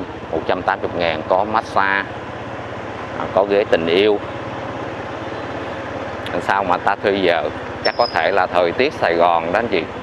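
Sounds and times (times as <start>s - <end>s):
low engine hum: 0.0s - 10.0s
street noise: 0.0s - 10.0s.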